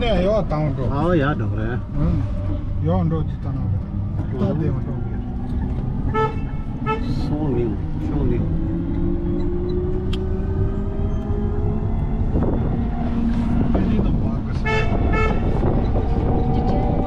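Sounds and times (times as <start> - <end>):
vehicle cabin rumble and whine: 0.0 - 17.0
vehicle horn toots: 6.1 - 7.3, 14.5 - 15.8.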